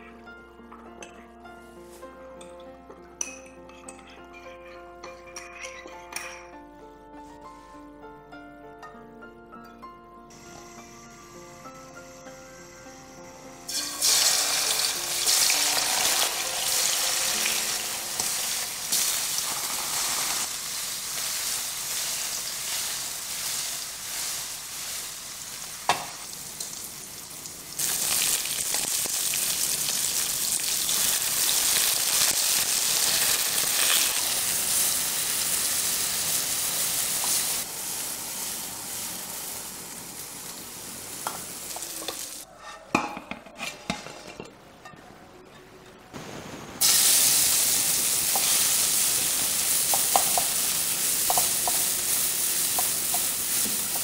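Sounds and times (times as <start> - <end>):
tofu sizzling in hot oil: 13.2 - 42.4, 46.8 - 54.0.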